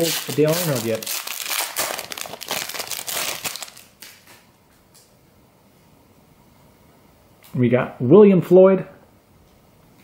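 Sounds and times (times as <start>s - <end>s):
foil wrapper crinkling: 0.0s - 4.5s.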